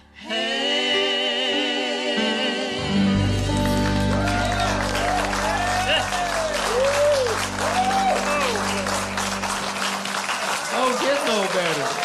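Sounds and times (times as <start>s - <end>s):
sustained instrumental chord: 2.2s - 12.0s
audience applauding: 3.2s - 12.0s.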